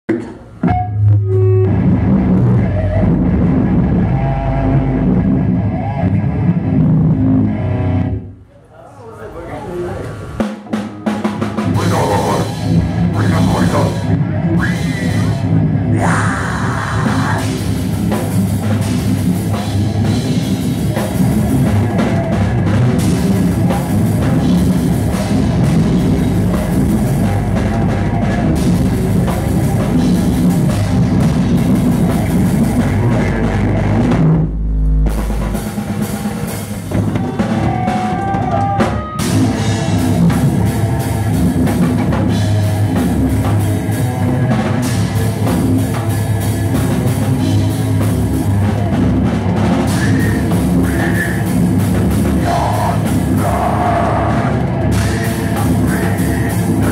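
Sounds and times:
death metal band playing: 0.1s - 8.4s, 9.4s - 56.9s
distorted electric guitar: 0.1s - 8.4s, 10.4s - 56.9s
fast drum kit: 9.7s - 56.9s.

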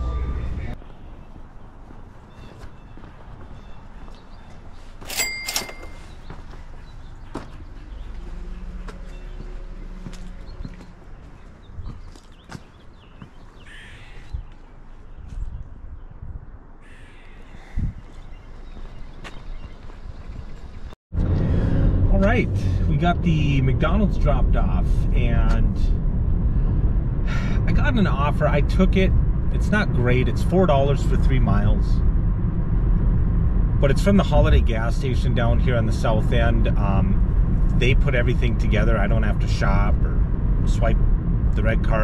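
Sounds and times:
footsteps: 5.7s - 13.6s
bird calling: 5.9s - 15.3s, 16.8s - 20.9s.

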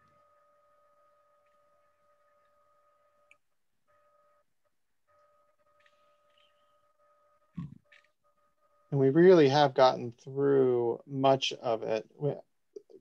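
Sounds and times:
faint electrical whine: 0.0s - 13.0s.

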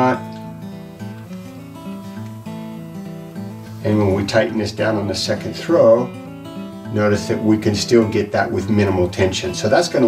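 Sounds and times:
acoustic guitar plucked notes: 0.0s - 10.0s.

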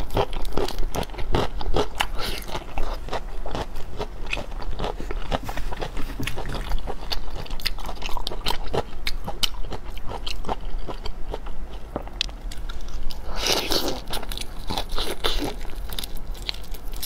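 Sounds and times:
chewing raw shrimp: 0.0s - 17.0s.

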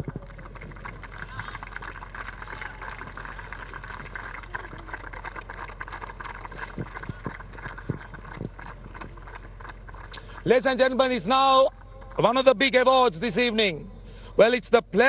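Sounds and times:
many hands clapping: 0.0s - 11.1s
low electrical hum: 0.0s - 15.0s.

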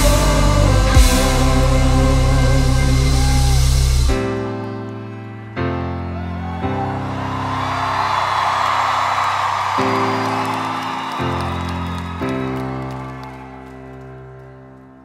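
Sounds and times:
slow piano chords: 0.0s - 15.0s
audience cheering and clapping: 2.8s - 5.1s, 6.0s - 15.0s.

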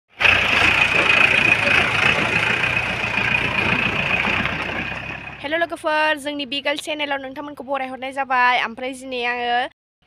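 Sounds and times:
pickup engine idling: 0.1s - 5.8s
high-pitched engine whine: 0.2s - 5.8s.

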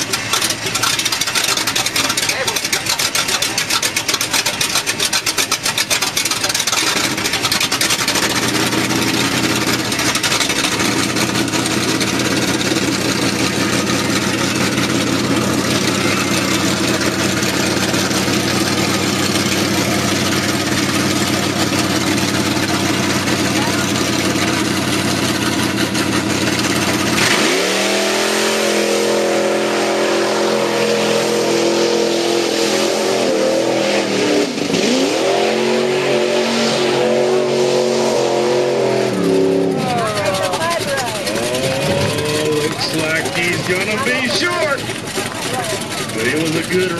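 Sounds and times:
truck engine revving: 0.0s - 46.9s.

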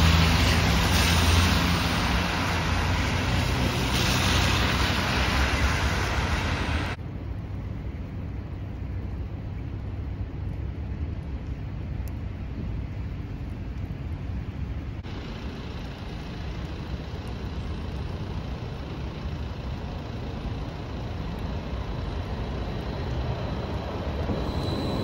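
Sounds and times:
tram on track: 0.0s - 7.1s, 15.0s - 25.0s
city traffic noise: 0.0s - 25.0s.

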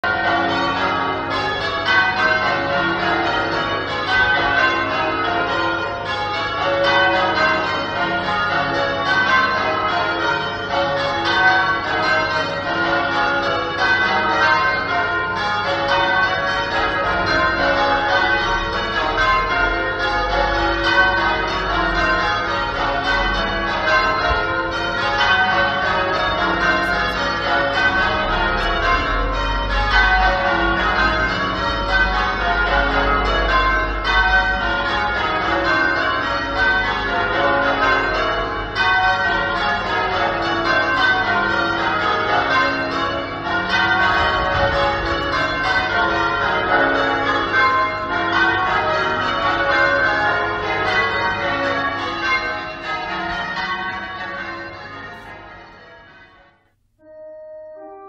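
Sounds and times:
church bells change-ringing: 0.0s - 58.0s.

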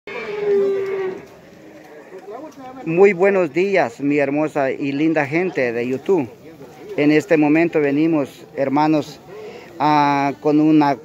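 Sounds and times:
cow mooing: 0.1s - 1.3s.

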